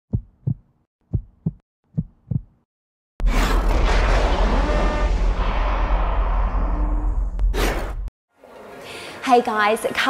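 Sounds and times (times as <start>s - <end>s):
heartbeat thumps: 0.1s - 2.7s.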